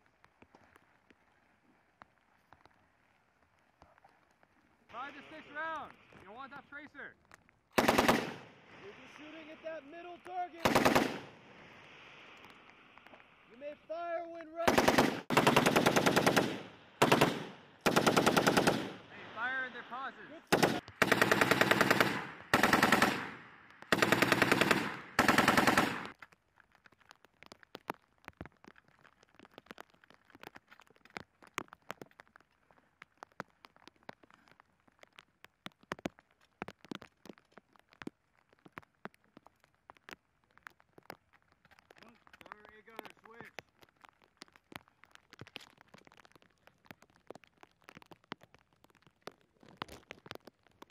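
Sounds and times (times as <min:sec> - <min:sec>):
faint ticks and crackles: 0:00.0 - 0:50.9
machine gun bursts: 0:07.8 - 0:08.4, 0:10.6 - 0:11.3, 0:14.7 - 0:19.0, 0:20.5 - 0:26.1.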